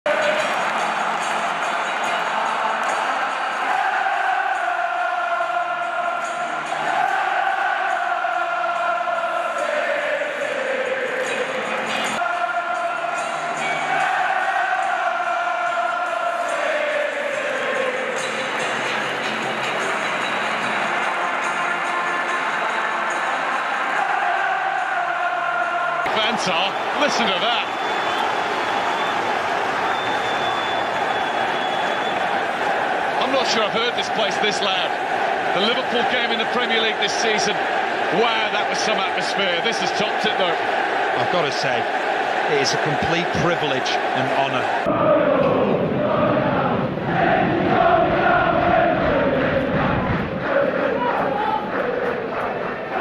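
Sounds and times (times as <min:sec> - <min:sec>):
crowd noise: 0:00.0 - 0:53.0
football crowd singing a chant: 0:00.1 - 0:53.0.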